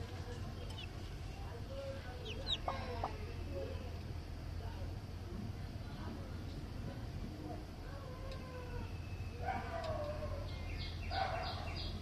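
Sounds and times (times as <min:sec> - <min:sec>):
hen clucking: 0:00.6 - 0:01.0, 0:02.0 - 0:03.3
chick peeping: 0:00.6 - 0:01.1, 0:01.8 - 0:03.2.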